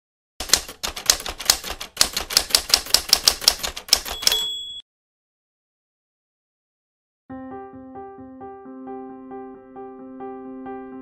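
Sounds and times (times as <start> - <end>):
typewriter keys clacking: 0.4 - 4.6.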